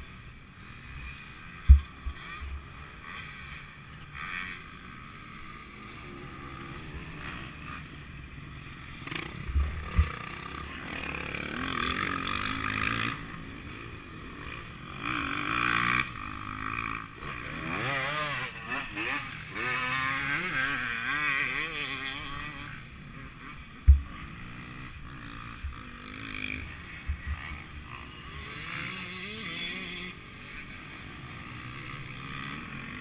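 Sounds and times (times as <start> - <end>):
motocross bike engine revving: 0.0 - 33.0
low thumps: 23.9 - 24.1.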